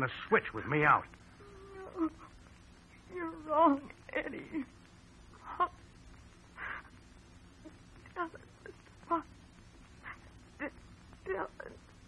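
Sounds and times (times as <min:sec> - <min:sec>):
faint steady hum: 0:00.0 - 0:12.0
high whimpering cries: 0:01.4 - 0:02.4.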